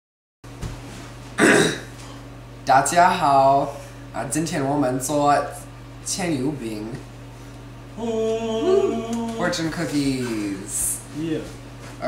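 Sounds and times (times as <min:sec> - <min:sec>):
steady low hum: 0:00.5 - 0:12.0
person's rough vocal noise: 0:08.0 - 0:09.4.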